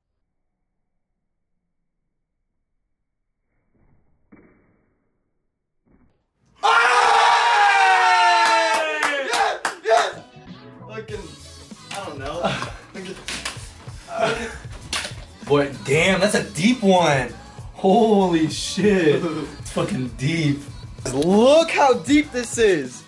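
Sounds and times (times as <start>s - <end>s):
excited yelling: 6.6s - 10.2s
music: 7.4s - 23.0s.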